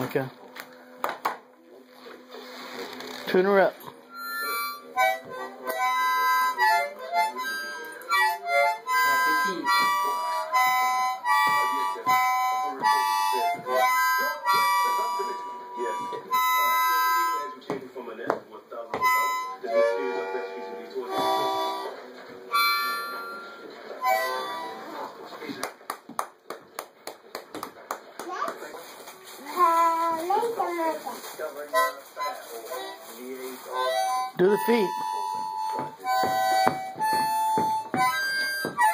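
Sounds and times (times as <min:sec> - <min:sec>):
harmonica chords and notes: 0:03.3 - 0:17.8, 0:18.8 - 0:25.2, 0:29.6 - 0:38.9.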